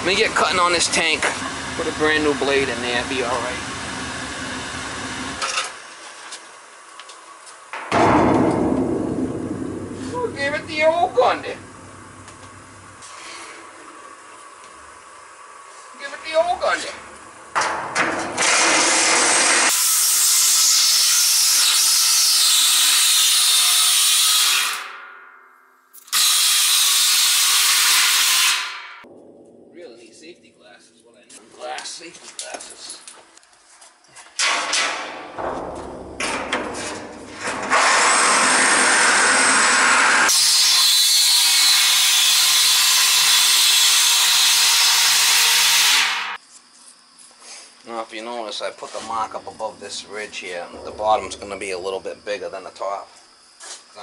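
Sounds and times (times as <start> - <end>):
reciprocating saw cutting steel: 18.2 - 25.0, 26.0 - 29.0, 37.4 - 46.4.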